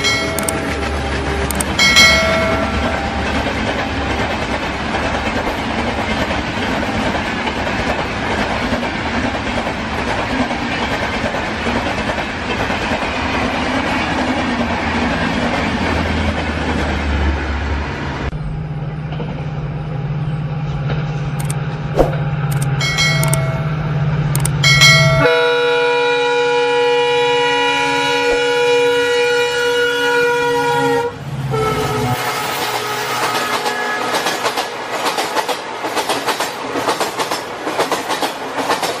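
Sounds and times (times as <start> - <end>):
train horn: 25.2 - 34.6
train wheels clattering: 32.6 - 39.0.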